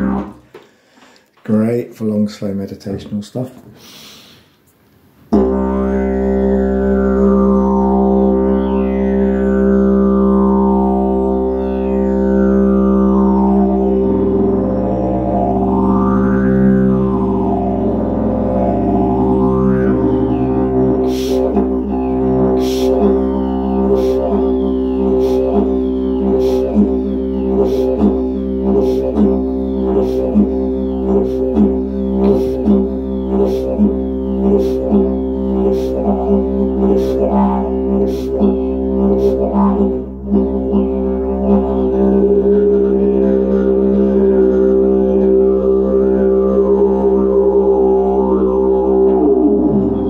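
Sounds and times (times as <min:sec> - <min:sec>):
didgeridoo drone: 0:00.0 - 0:00.7, 0:05.3 - 0:50.0.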